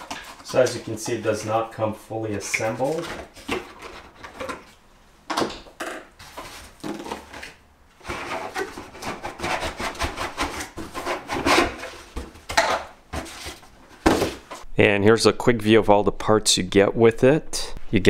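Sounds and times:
cardboard scraping: 0.0s - 1.6s, 6.2s - 14.6s.

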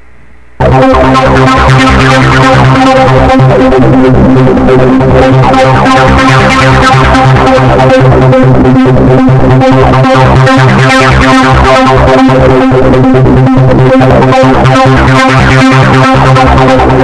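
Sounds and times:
arpeggiated synth notes: 0.6s - 17.0s.

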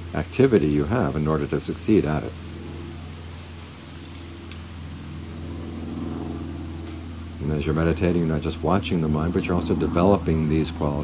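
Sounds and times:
low engine-like hum: 0.0s - 11.0s.

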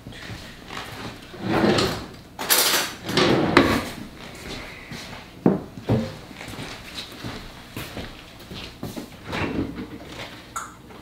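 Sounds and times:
drawers and cabinet doors clattering: 0.7s - 4.2s, 5.9s - 6.3s, 9.2s - 10.4s.

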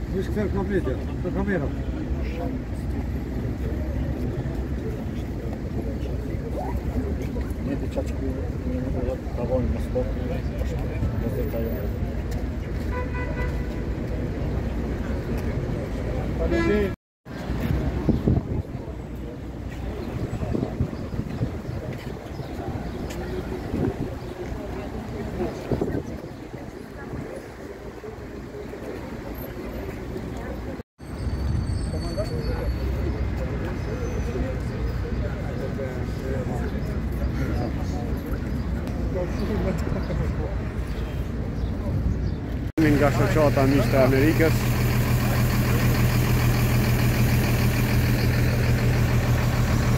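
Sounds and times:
faint voices talking: 0.0s - 30.8s, 31.4s - 49.9s
wind rumbling on microphone: 17.4s - 27.8s
large vehicle engine idling: 42.8s - 49.9s.

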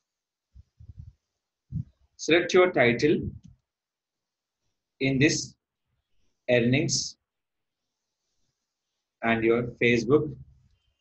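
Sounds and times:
man speaking: 2.2s - 3.4s, 5.0s - 5.6s, 6.5s - 7.2s, 9.2s - 10.4s.

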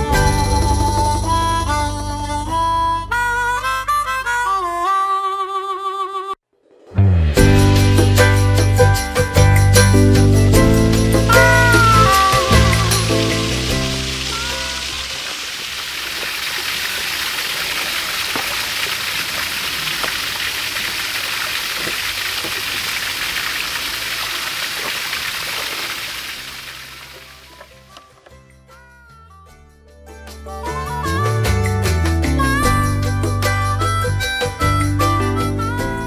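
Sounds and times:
background music: 0.0s - 15.1s, 26.4s - 36.0s
waterfall splashing into pond: 11.2s - 28.0s.

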